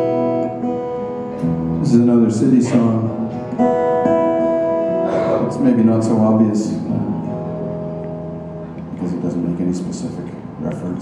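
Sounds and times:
acoustic guitar chord ringing: 0.0s - 9.2s.

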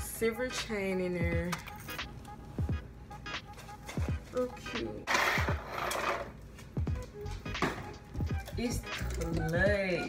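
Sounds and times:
music with deep bass notes: 6.8s - 10.0s.

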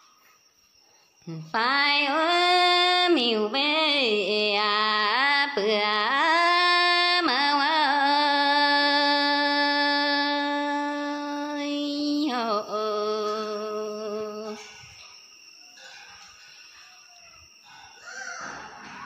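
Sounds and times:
woman singing unaccompanied: 1.3s - 14.7s.

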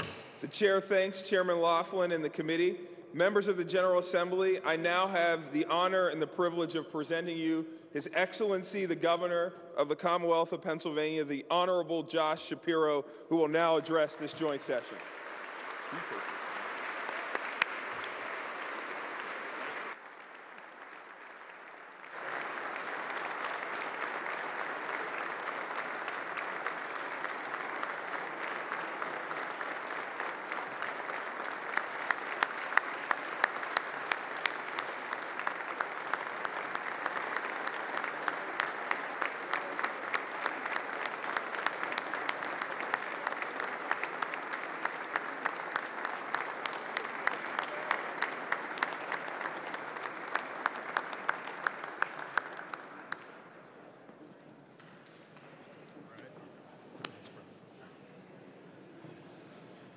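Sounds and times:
crowd applauding: 13.6s - 53.7s.

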